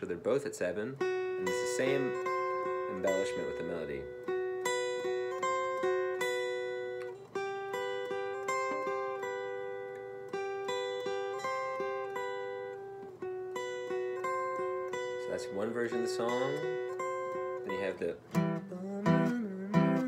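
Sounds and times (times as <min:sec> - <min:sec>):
acoustic guitar melody: 0:00.0 - 0:20.0.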